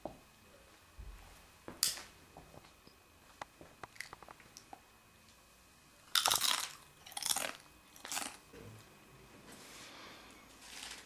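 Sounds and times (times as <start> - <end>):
tortilla chips crunching: 6.1 - 8.4, 10.6 - 11.0.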